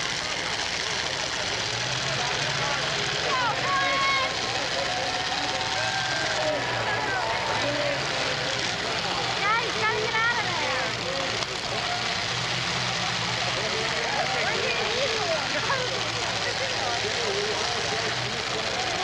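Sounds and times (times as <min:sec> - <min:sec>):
car engines running: 0:00.0 - 0:19.0
crowd talking and shouting: 0:00.0 - 0:19.0.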